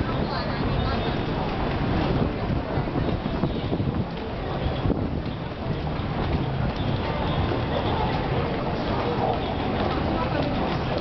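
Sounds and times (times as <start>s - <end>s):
hubbub of busy city passage: 0.0s - 11.0s
indistinct voices: 0.0s - 11.0s
footsteps on hard walkway: 0.1s - 11.0s.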